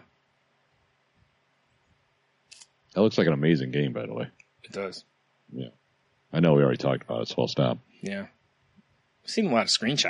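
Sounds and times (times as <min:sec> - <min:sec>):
man speaking: 0:03.0 - 0:05.0, 0:06.4 - 0:08.3, 0:09.3 - 0:10.0.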